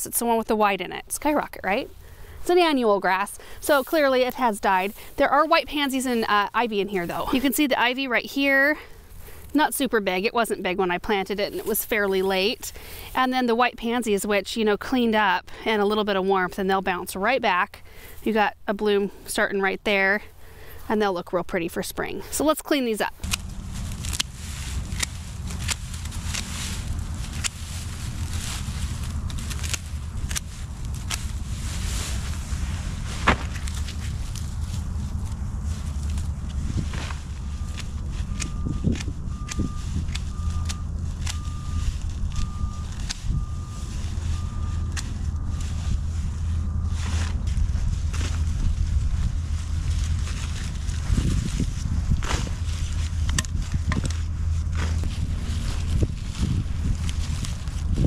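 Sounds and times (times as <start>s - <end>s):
dry grass rustling and crackling: 0.2s - 14.4s, 22.4s - 58.0s
steady low hum: 23.0s - 58.0s.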